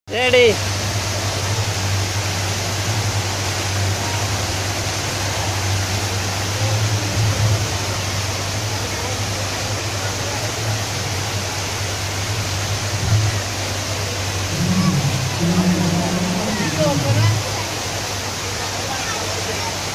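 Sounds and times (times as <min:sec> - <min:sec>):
fountain water splashing: 0:00.1 - 0:19.9.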